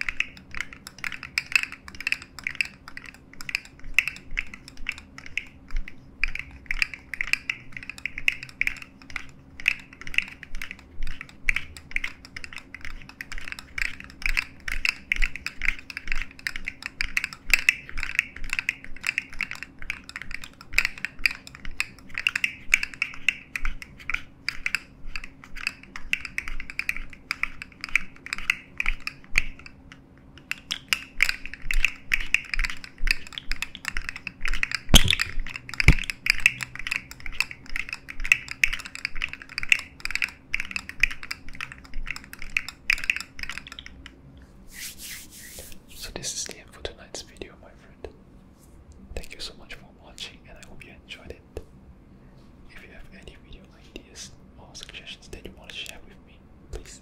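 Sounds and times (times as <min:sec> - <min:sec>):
plastic toy segments clicking: 0:00.0 - 0:29.8, 0:30.4 - 0:44.2.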